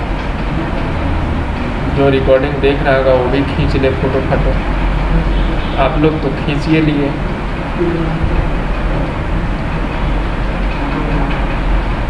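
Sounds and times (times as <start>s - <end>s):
low electrical hum: 0.0s - 12.0s
rumbling room noise: 0.0s - 12.0s.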